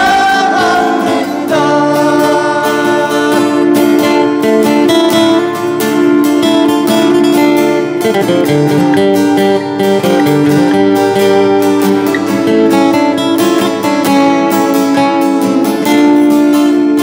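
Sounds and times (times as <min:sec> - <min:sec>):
acoustic guitars strummed: 0:00.0 - 0:17.0.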